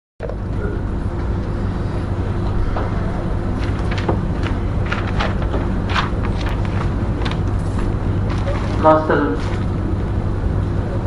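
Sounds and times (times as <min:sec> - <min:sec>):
low hum and rumble: 0:00.2 - 0:11.0.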